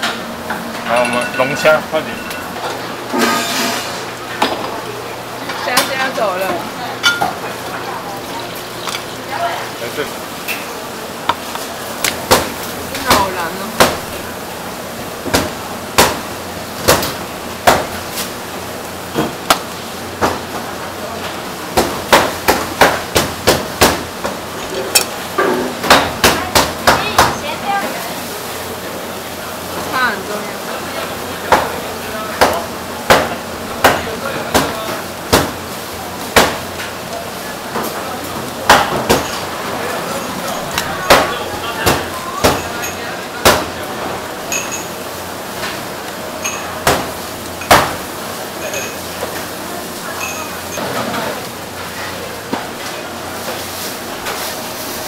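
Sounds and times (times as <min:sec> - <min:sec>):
kitchen background noise: 0:00.0 - 0:55.0.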